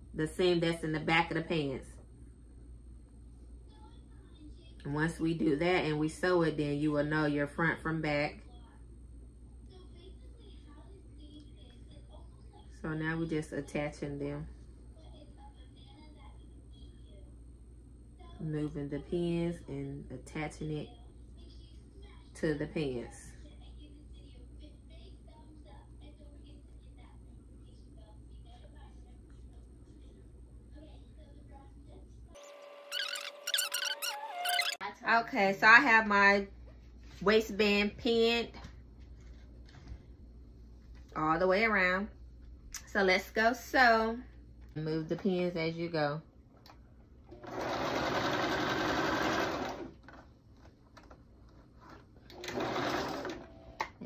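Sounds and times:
low steady hum: 0.0s - 54.0s
sewing machine stitching: 47.3s - 50.2s, 51.8s - 53.9s.

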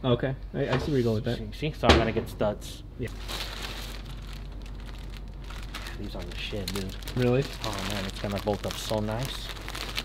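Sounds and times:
plastic bags crinkling: 3.0s - 10.0s.

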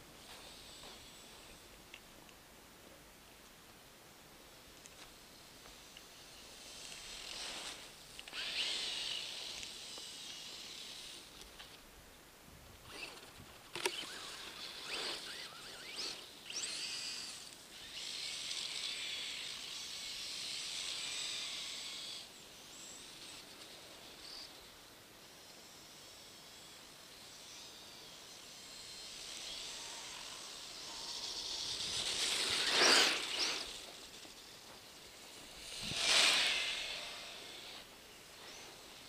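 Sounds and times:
rc buggies driving through snow: 4.8s - 11.8s, 12.7s - 39.0s.

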